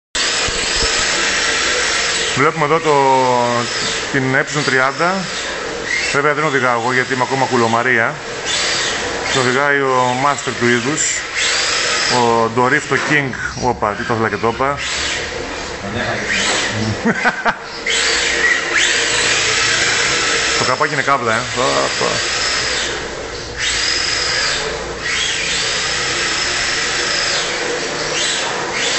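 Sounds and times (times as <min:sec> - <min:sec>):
electric motor whine: 0:00.2 - 0:28.9
person chuckling: 0:16.0 - 0:17.8.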